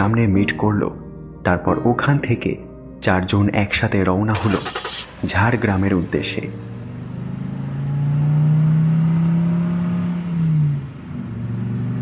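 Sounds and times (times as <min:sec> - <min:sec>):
car engine revving: 0:04.4 - 0:12.0.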